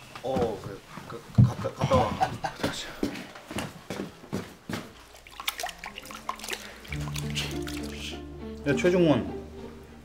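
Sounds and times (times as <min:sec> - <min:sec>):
water splashing in a sink: 0:05.0 - 0:08.2
background music with held notes: 0:06.9 - 0:10.0.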